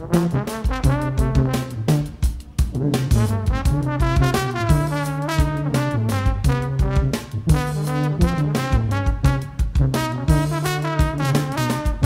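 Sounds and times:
brass band playing: 0:00.0 - 0:12.0
trombone and trumpet lines: 0:00.0 - 0:12.0.

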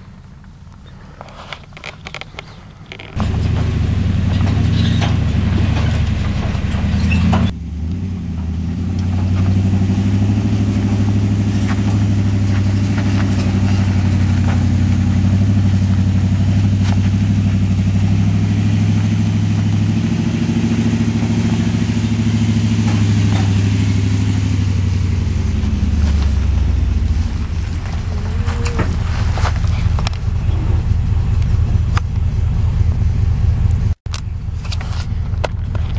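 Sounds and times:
gravel crunching under tyres: 0:00.0 - 0:35.9
pickup truck engine: 0:00.0 - 0:35.9.

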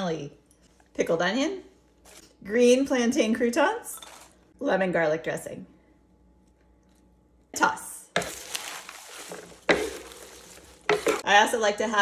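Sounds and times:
salad tossed in wooden bowl: 0:08.2 - 0:11.2.

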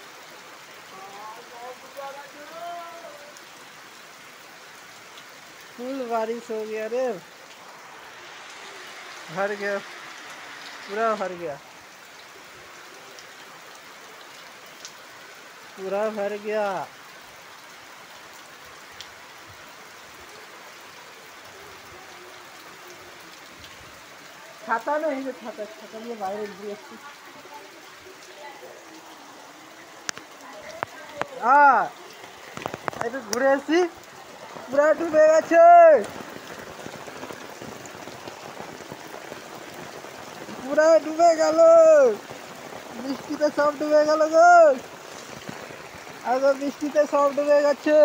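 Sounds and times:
rain falling on water: 0:00.0 - 0:48.0.

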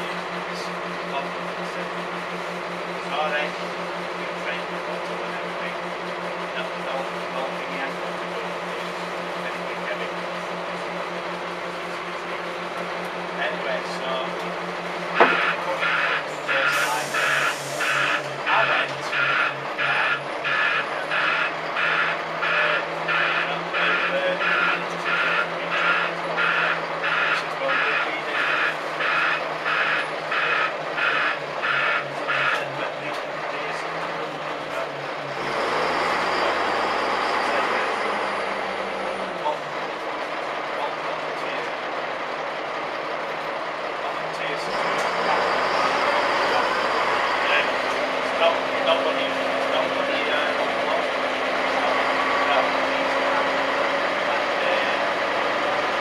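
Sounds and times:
diesel engine idling: 0:00.0 - 0:56.0
reversing beeper: 0:15.1 - 0:39.6, 0:44.1 - 0:55.9.

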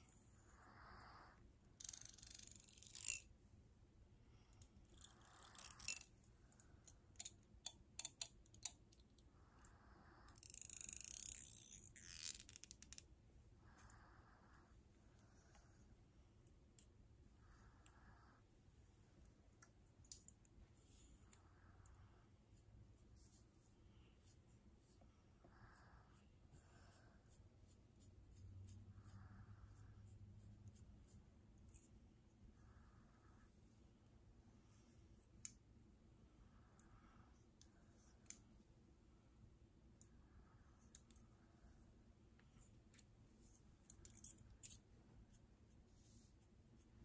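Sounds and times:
comb rasping through hair: 0:26.2 - 0:31.9.

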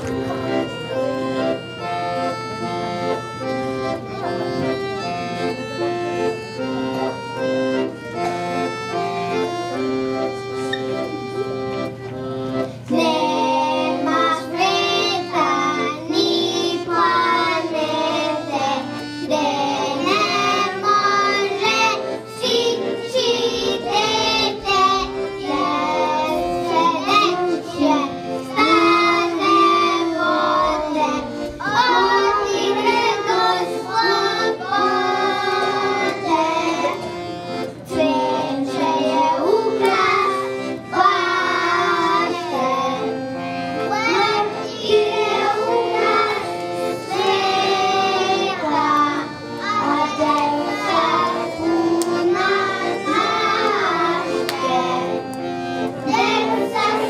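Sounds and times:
children singing together: 0:12.7 - 0:57.0.

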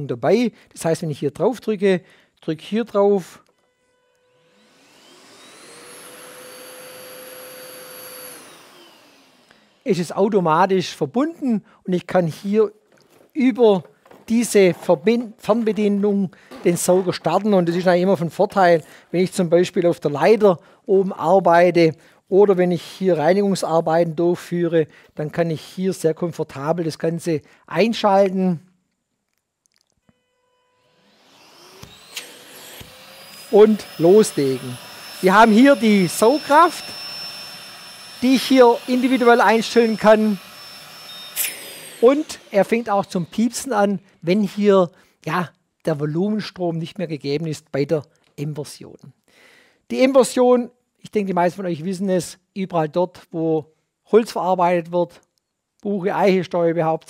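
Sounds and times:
dust extractor turbine whine: 0:04.4 - 0:10.2, 0:31.0 - 0:43.9.

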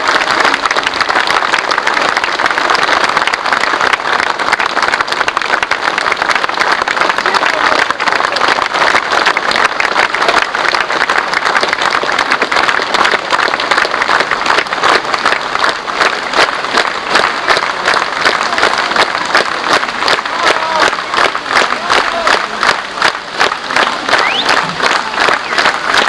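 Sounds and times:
large audience applauding: 0:00.0 - 0:26.0.

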